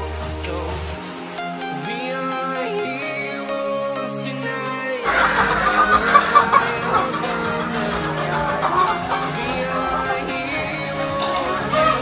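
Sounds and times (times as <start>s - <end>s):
din of birds: 5.1s - 12.0s
roosters clucking: 5.1s - 12.0s.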